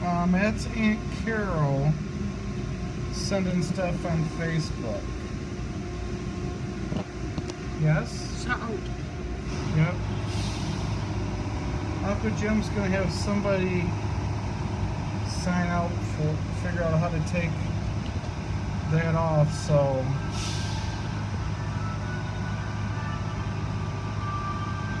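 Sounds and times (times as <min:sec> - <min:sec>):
low engine-like rumble: 0:00.0 - 0:25.0
low mechanical drone: 0:00.0 - 0:25.0
burst of hiss: 0:10.2 - 0:11.1, 0:20.3 - 0:21.1.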